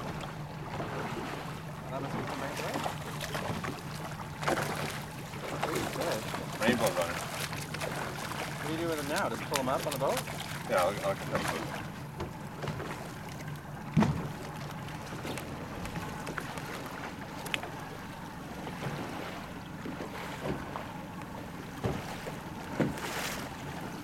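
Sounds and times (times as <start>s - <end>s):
boat engine idling: 0.0s - 24.0s.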